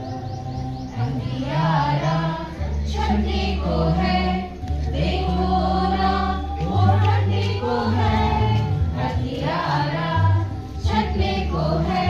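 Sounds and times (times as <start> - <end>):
low steady accompaniment: 0.0 - 12.0
group singing a patriotic song: 1.0 - 12.0.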